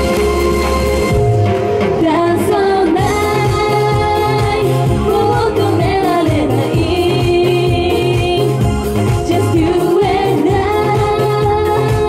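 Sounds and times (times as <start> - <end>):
backing track with bass beat: 0.0 - 12.0
women singing into microphones: 1.9 - 12.0.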